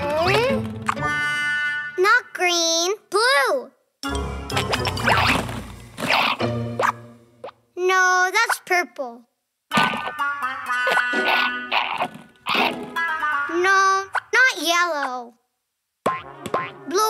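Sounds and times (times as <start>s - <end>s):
children's music: 0.0s - 2.8s, 4.0s - 7.4s, 9.7s - 14.4s
cartoon character wordless vocals: 7.8s - 11.6s, 12.9s - 15.4s.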